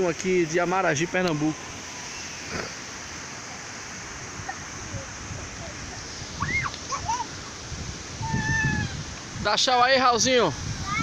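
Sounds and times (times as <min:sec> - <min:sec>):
water rushing over rocks: 0:00.0 - 0:11.0.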